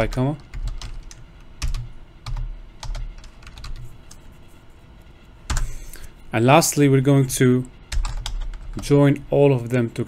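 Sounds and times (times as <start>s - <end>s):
computer keyboard typing: 0.0s - 4.2s, 5.5s - 5.8s, 7.9s - 9.0s.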